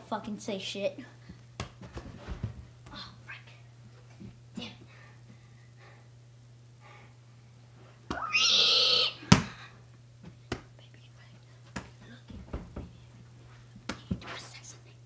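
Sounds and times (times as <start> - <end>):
steady low hum: 0.0 - 15.0
footsteps and handling knocks: 1.2 - 3.0, 11.6 - 14.4
person crying out: 8.1 - 9.3
football thud: 9.2 - 9.6.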